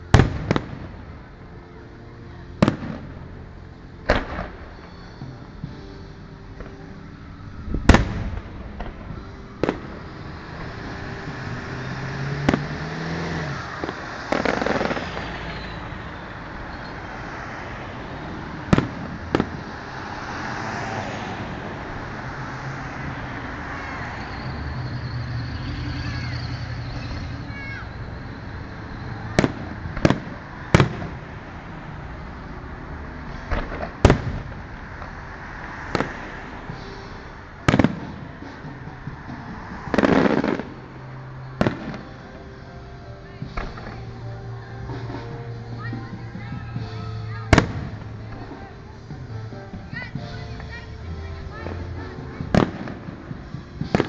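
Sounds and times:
firework bangs: 0:00.0 - 0:01.3, 0:02.6 - 0:03.4, 0:04.1 - 0:05.8, 0:07.7 - 0:16.8, 0:18.2 - 0:22.2, 0:22.8 - 0:31.5, 0:33.3 - 0:35.2, 0:35.8 - 0:42.3, 0:44.9 - 0:48.7, 0:51.4 - 0:54.0
street noise: 0:00.0 - 0:54.0
faint falling whistle: 0:23.7 - 0:29.3.

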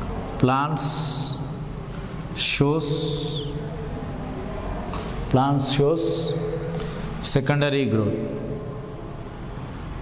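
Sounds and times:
marker pen writing on whiteboard: 0:00.0 - 0:10.0
room noise: 0:00.0 - 0:10.0.

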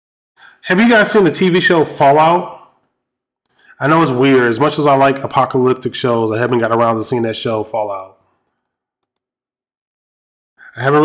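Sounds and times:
man's voice: 0:00.5 - 0:02.7, 0:03.7 - 0:08.2, 0:10.7 - 0:11.0
faint clicks: 0:08.4 - 0:09.3.

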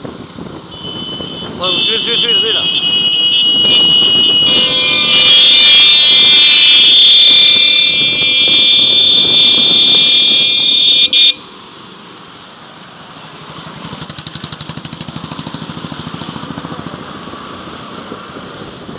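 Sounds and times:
motorcycle horns: 0:00.6 - 0:11.4
motorcycle engine running: 0:13.9 - 0:17.2.

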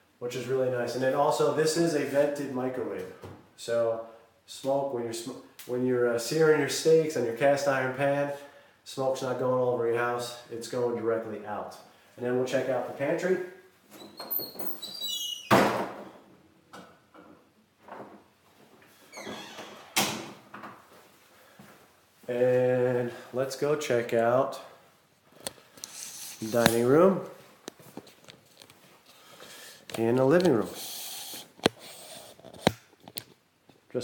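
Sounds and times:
door squeaking: 0:13.9 - 0:16.2, 0:19.1 - 0:20.4
door thudding shut: 0:15.5 - 0:16.1
tripod sliding rustle: 0:25.4 - 0:26.9, 0:27.8 - 0:33.2.

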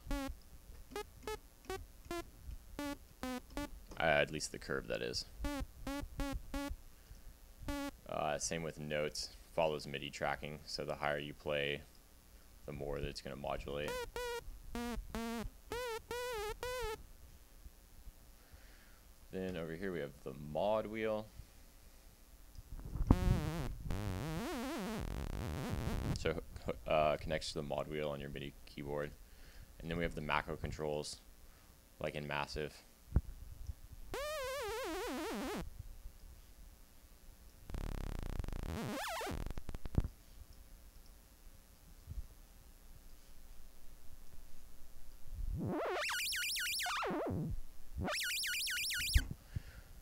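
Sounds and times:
synthesizer sawtooth notes: 0:00.0 - 0:00.3, 0:00.9 - 0:03.7, 0:05.4 - 0:06.7, 0:07.7 - 0:08.0, 0:13.8 - 0:17.0, 0:34.2 - 0:35.6, 0:45.6 - 0:49.3.

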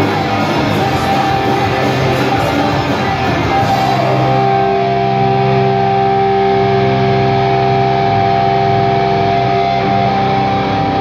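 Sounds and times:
electric guitar chord ringing: 0:00.0 - 0:11.0.

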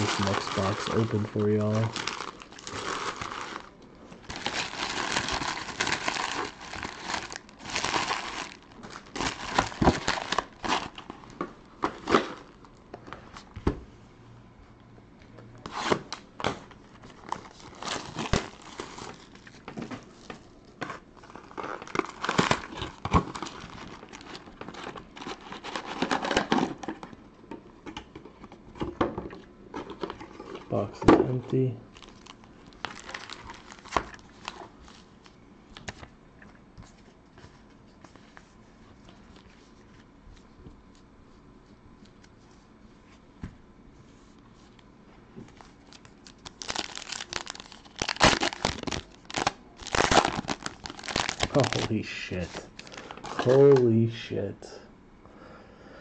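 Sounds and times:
plastic wrapping crinkling and tearing: 0:00.0 - 0:12.8, 0:15.6 - 0:27.1, 0:29.8 - 0:36.1, 0:45.4 - 0:53.9.

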